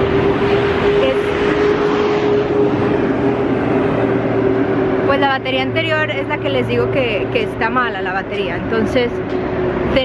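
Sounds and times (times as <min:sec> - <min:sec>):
constant low hum: 0:00.0 - 0:10.0
road traffic passing: 0:00.0 - 0:10.0.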